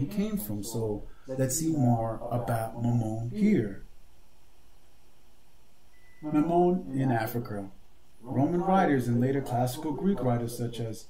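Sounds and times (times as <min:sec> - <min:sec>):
room hiss and hum: 0:00.0 - 0:11.0.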